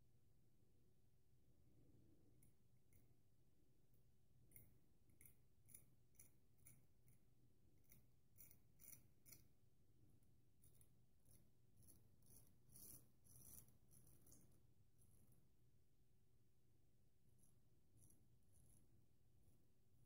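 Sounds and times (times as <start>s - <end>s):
razor scraping stubble: 11.8s - 14.1s.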